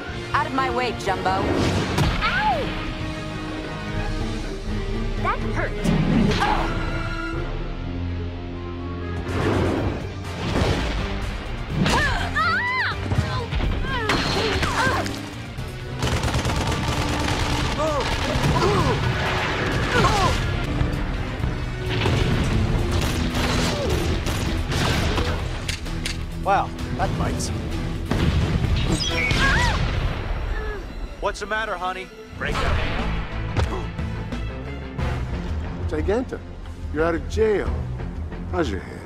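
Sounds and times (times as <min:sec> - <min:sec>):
background music: 0:00.0 - 0:39.0
booms and blasts: 0:28.0 - 0:30.5.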